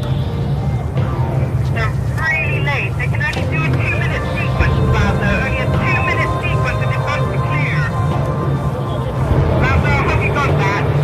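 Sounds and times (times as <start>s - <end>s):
indistinct voices: 0.0s - 11.0s
low engine drone: 0.0s - 11.0s.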